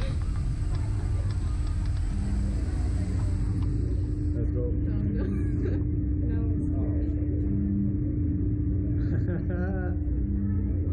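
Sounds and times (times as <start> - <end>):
constant hum: 0.0 - 10.9
steady low rumble: 0.0 - 10.9.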